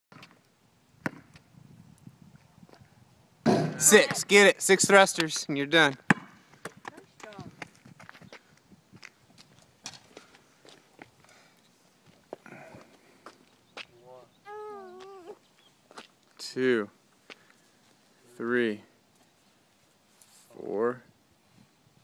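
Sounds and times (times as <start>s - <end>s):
faint footsteps on a street: 4.8s - 18.3s.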